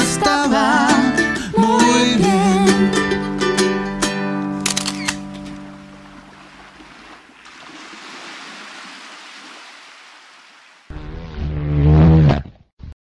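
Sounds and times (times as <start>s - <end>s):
ukulele chord: 0.0s - 4.6s.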